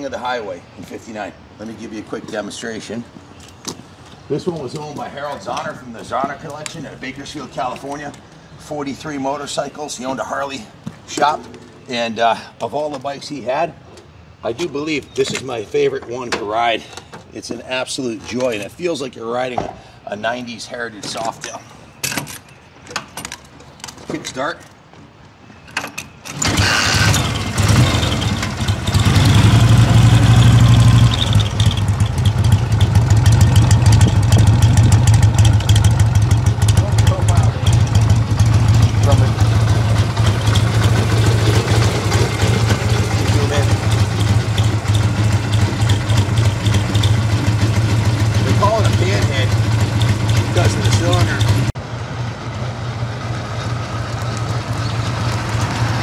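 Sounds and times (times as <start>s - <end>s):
motorcycle engine rumbling: 26.3s - 56.0s.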